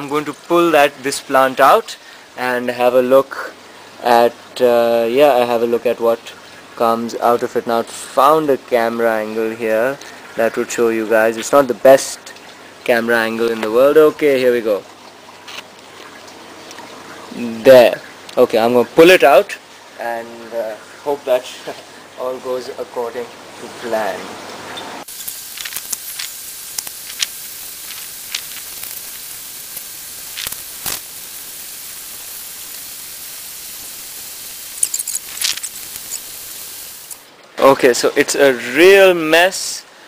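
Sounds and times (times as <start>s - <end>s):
water trickling: 0.0s - 38.3s
roots crackling and rustling: 25.0s - 32.9s, 34.6s - 37.2s.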